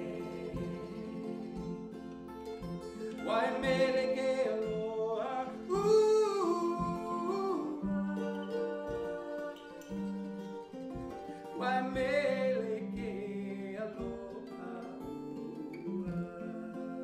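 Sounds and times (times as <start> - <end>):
man singing held notes: 0.0 - 1.9, 3.1 - 10.4, 11.3 - 17.0
acoustic guitar: 0.0 - 17.0
mandolin: 0.0 - 17.0.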